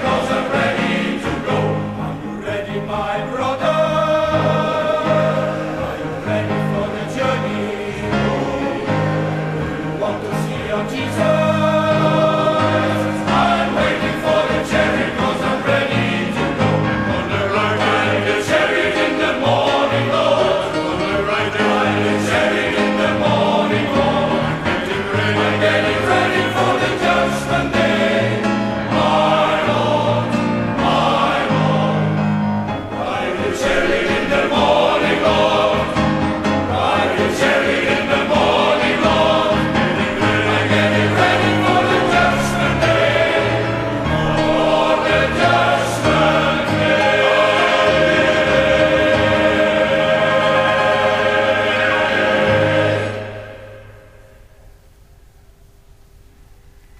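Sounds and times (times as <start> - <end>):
men's choir singing in harmony: 0.0 - 54.6.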